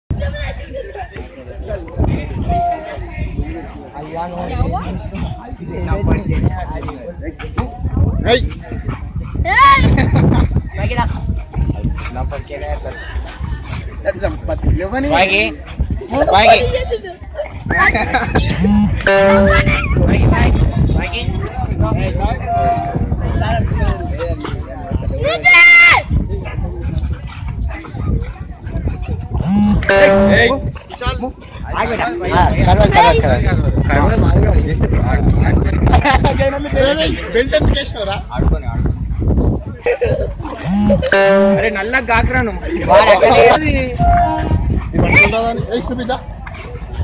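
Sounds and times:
dogs play-fighting: 3.5 - 19.0, 19.7 - 29.5, 30.6 - 40.6, 42.0 - 47.0
lower voice: 18.4 - 19.9, 29.4 - 30.7, 40.6 - 41.8
dog high call: 18.5 - 20.0.

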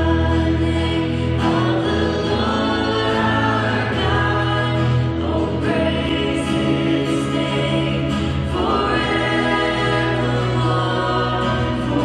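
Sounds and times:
acoustic guitar: 0.0 - 12.0
keyboard: 0.0 - 12.0
voices singing together: 0.0 - 12.0.

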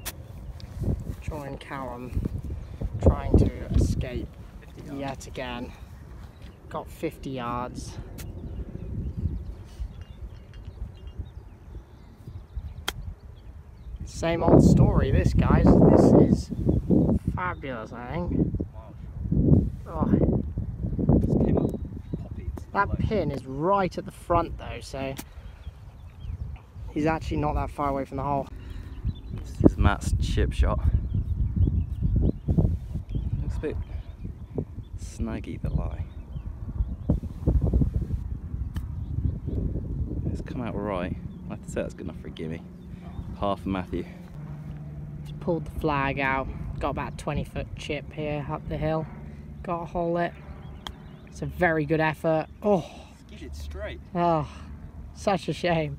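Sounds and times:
wind rumbling on microphone: 0.0 - 52.6
golf club striking ball: 50.6 - 51.2.

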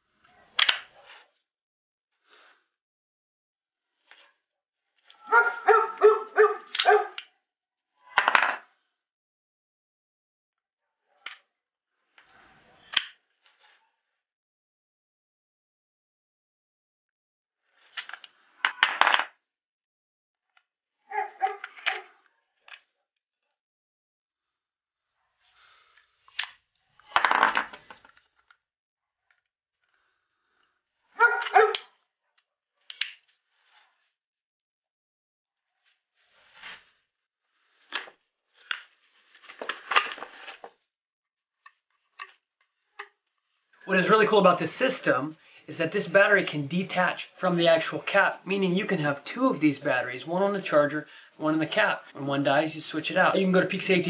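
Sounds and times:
dog barking: 5.2 - 7.2, 21.1 - 22.2, 31.1 - 31.9.

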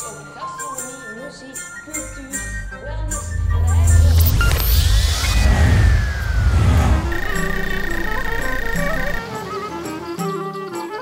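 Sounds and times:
bass-heavy background music: 1.9 - 9.6
whoosh transition effect: 3.1 - 9.2.

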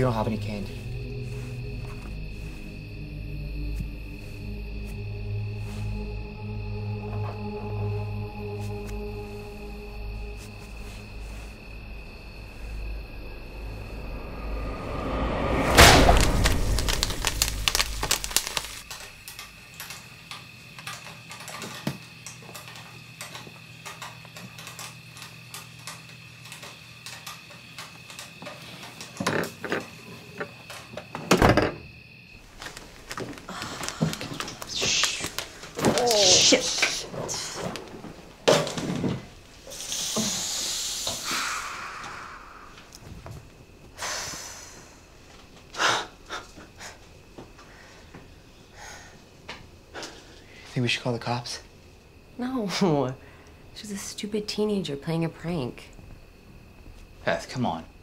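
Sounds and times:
deep rumble: 0.0 - 18.8
popcorn popping: 15.9 - 19.3.

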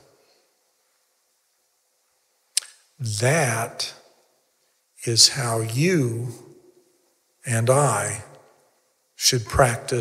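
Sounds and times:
person talking: 3.0 - 4.0, 5.0 - 6.4, 7.4 - 8.3, 9.2 - 10.0.

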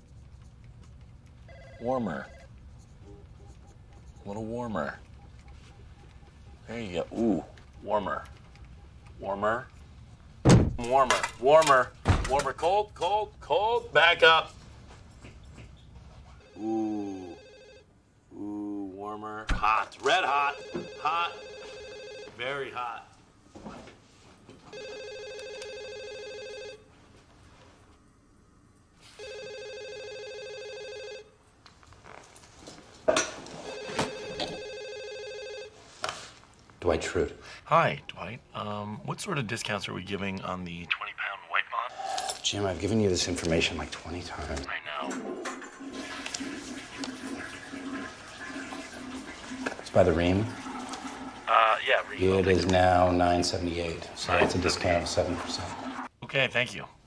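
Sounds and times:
desk telephone ringing: 1.3 - 2.6, 16.4 - 17.9, 20.1 - 22.8, 24.7 - 26.9, 29.1 - 31.3, 33.5 - 35.9
toilet flushing: 45.0 - 56.1.

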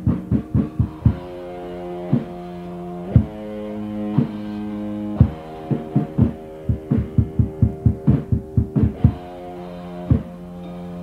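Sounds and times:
drum hits: 0.0 - 1.4, 3.2 - 3.4, 5.2 - 9.3, 10.1 - 10.3
distorted electric guitar chords: 0.0 - 11.0.

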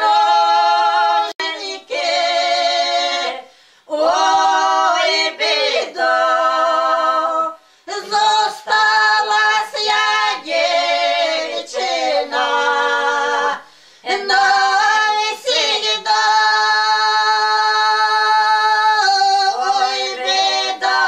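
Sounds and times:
women singing unaccompanied: 0.0 - 21.0.

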